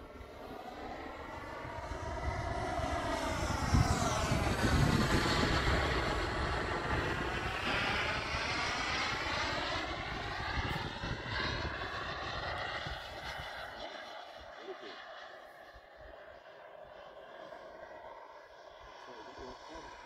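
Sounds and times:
model jet flying past: 0.0s - 20.0s.

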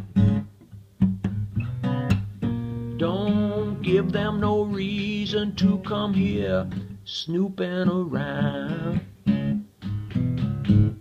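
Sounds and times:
guitar chords: 0.0s - 11.0s
person singing: 3.0s - 9.1s.

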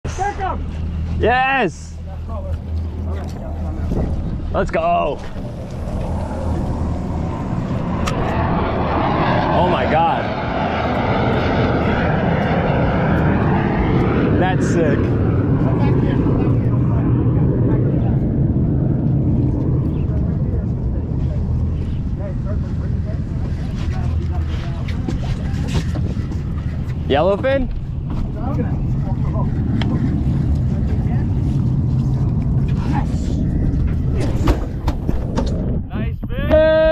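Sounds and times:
fighter jet flying past: 0.1s - 36.2s.

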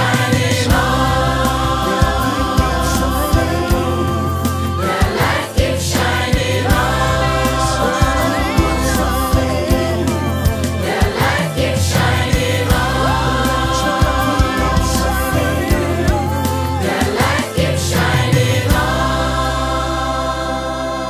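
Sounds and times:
band with steady beat: 0.0s - 19.2s
choir singing gospel: 0.0s - 21.0s.

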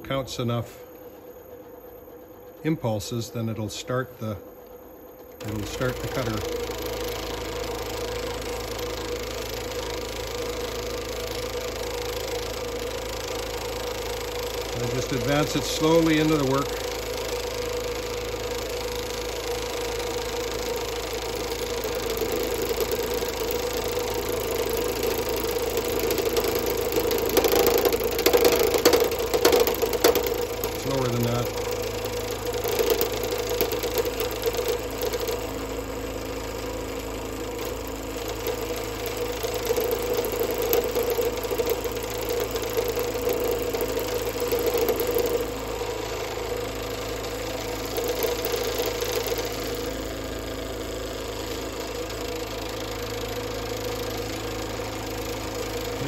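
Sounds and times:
wood lathe humming: 5.2s - 56.0s.

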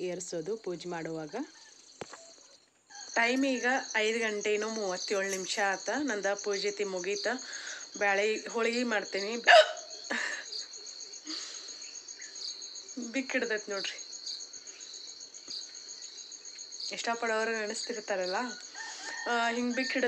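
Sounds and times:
crickets chirping: 0.0s - 20.0s.

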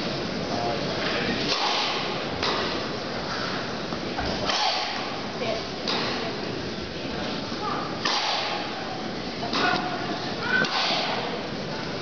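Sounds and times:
racket striking tennis ball: 4.4s - 5.2s, 8.0s - 8.7s.

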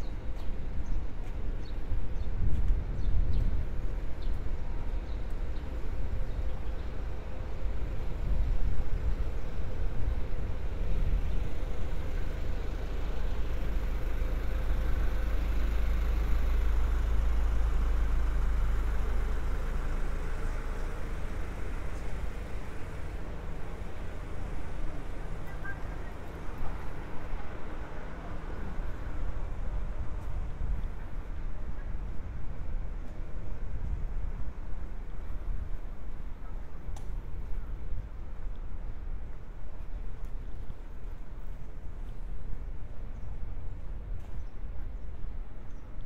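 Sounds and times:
motor vehicle engine rumble: 0.0s - 46.0s.

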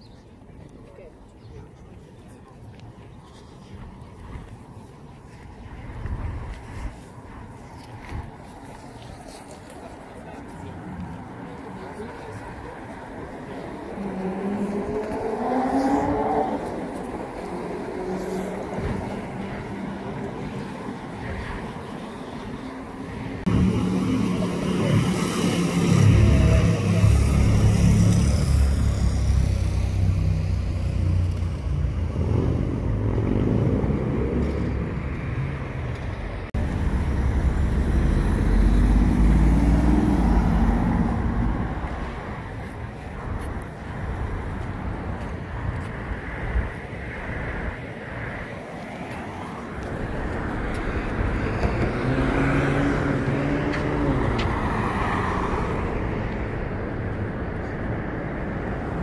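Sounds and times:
cars passing: 0.0s - 59.0s
low rumble of traffic: 0.0s - 59.0s.

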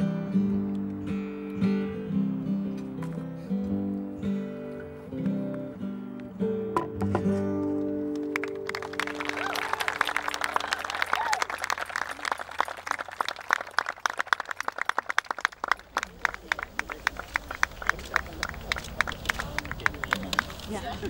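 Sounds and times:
crowd applauding: 8.1s - 21.0s.

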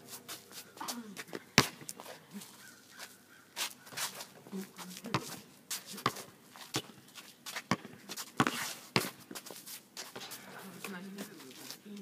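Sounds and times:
sneakers scuffing on court: 0.0s - 12.0s
basketball bouncing on asphalt: 1.6s - 2.0s, 5.1s - 11.0s.

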